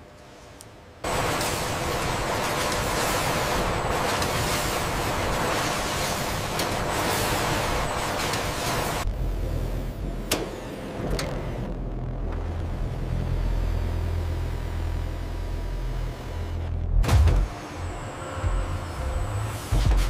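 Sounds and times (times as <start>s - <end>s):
machinery hum and rumble: 0.0s - 20.0s
heavy mechanical clunk: 17.0s - 17.5s.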